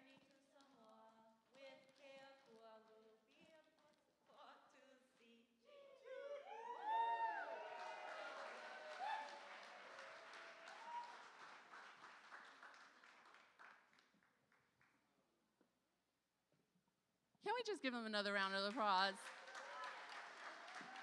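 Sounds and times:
whoops of cheering: 0:06.1 - 0:11.4, 0:19.5 - 0:21.0
audience applauding: 0:06.5 - 0:14.3, 0:18.6 - 0:21.0.

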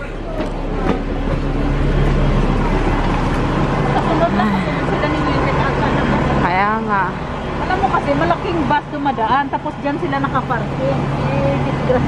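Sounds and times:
bus engine humming: 0:00.0 - 0:12.0
faint voices: 0:00.0 - 0:12.0.

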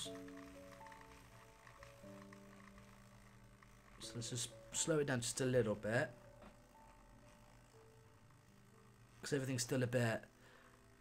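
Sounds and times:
small electric motor humming: 0:00.0 - 0:11.0.

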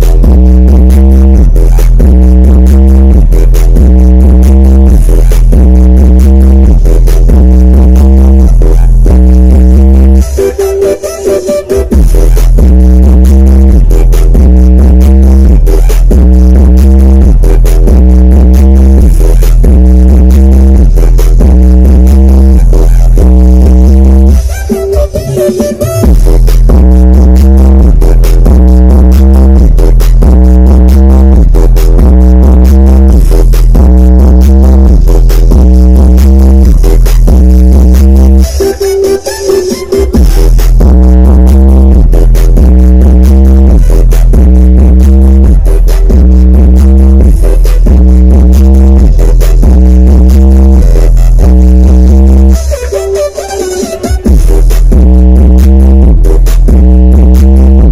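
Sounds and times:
loud electronic dance music: 0:00.0 - 0:57.9.

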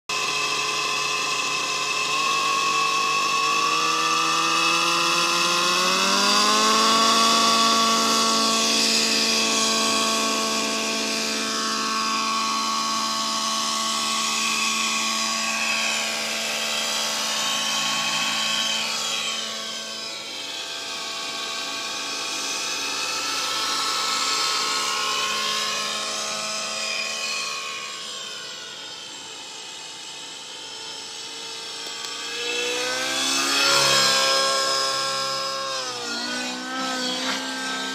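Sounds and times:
rc helicopter engine and rotor whine: 0:00.1 - 0:37.9.

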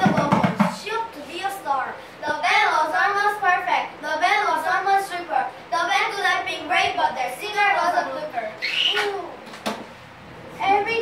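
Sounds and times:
hand drum struck with palms: 0:00.0 - 0:00.8
child's voice: 0:00.0 - 0:09.5, 0:10.6 - 0:11.0.

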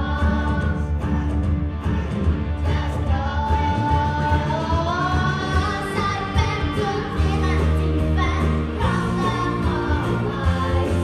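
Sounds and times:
bass and drums: 0:00.0 - 0:11.0
girl singing into microphone: 0:00.0 - 0:11.0.

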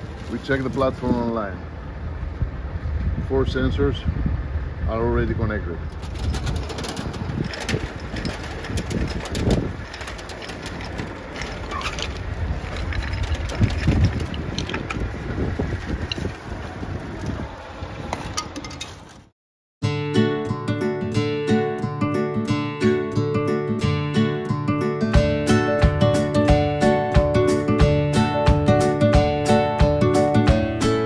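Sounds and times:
outdoor rumble: 0:00.0 - 0:19.3
wind on microphone: 0:00.0 - 0:19.3.

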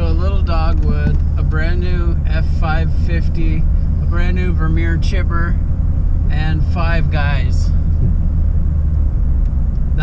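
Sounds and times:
truck engine and road rumble: 0:00.0 - 0:10.0.

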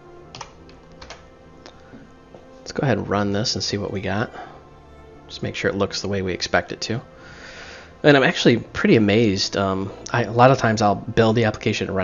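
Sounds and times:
faint background music: 0:00.0 - 0:12.0
computer keyboard keystrokes: 0:00.3 - 0:01.2.

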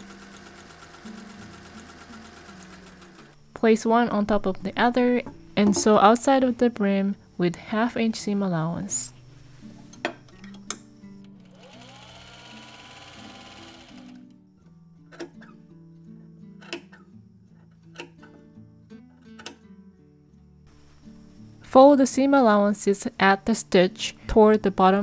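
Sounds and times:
sewing machine running: 0:00.0 - 0:03.4, 0:11.4 - 0:14.2
quiet background music: 0:00.0 - 0:25.0.

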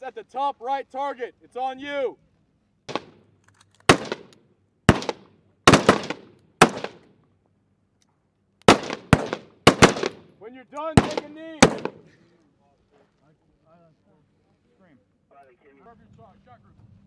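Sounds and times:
rifle shots: 0:02.9 - 0:03.3, 0:03.9 - 0:07.1, 0:08.7 - 0:10.3, 0:11.0 - 0:12.1.

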